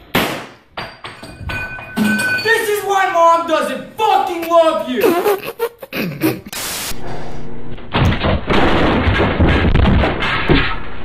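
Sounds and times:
revolver gunshot: 0.1s - 0.6s
knocks and clatters: 0.7s - 2.5s, 7.9s - 10.8s.

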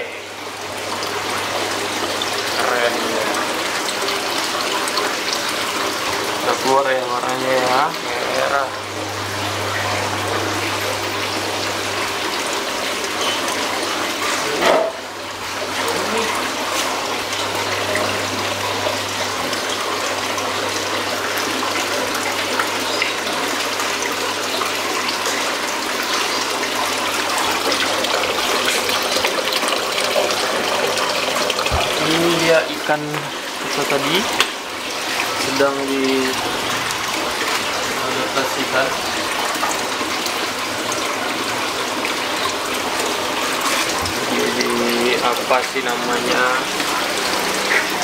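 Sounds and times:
low pump hum: 0.0s - 48.0s
water running from a hose: 0.0s - 48.0s.

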